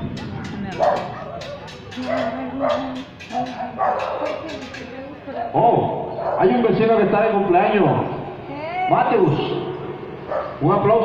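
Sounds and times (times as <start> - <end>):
dog barking: 0.7 - 4.4, 6.1 - 6.6, 10.3 - 10.6.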